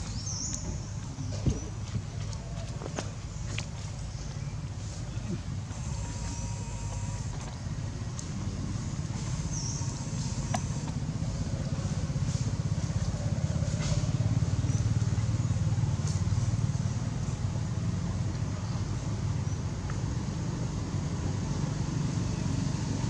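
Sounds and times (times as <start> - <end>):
vehicle engine drone: 0.0 - 23.0.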